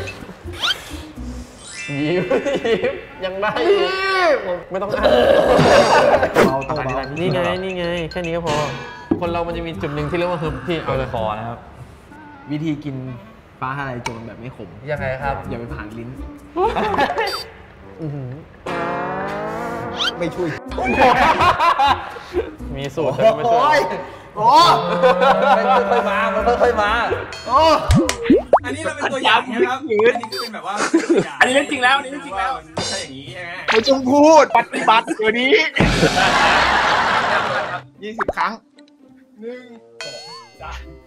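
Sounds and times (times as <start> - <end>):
men laughing and snickering: 1.9 - 3.2, 5.4 - 6.6, 20.3 - 23.4, 24.5 - 26.6, 34.6 - 37.8
person speaking: 6.4 - 8.8.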